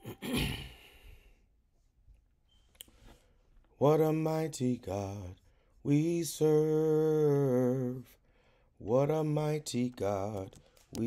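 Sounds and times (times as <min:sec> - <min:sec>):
man sighing: 0:00.0 - 0:01.3
man singing a hymn: 0:03.8 - 0:08.2, 0:08.8 - 0:11.0.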